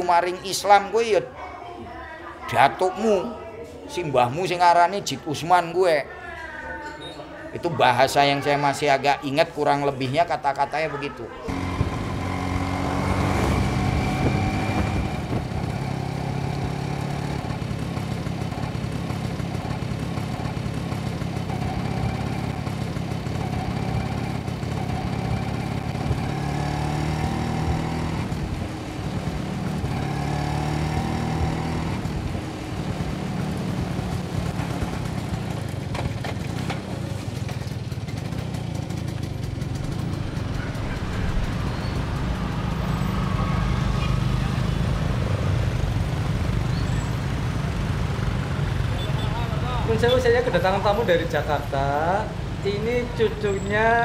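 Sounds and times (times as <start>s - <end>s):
motor scooter engine running: 11.5s - 54.0s.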